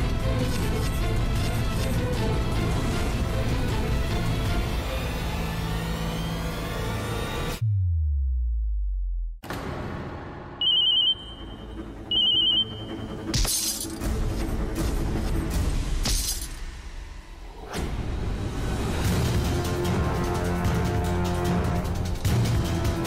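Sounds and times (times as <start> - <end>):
dramatic background music: 0.0 - 7.6, 9.4 - 23.0
mobile phone ringing: 10.6 - 13.0.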